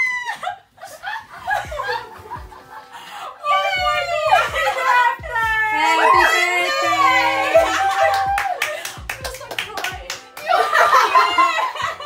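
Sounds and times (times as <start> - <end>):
quick hand claps: 7.9 - 10.6.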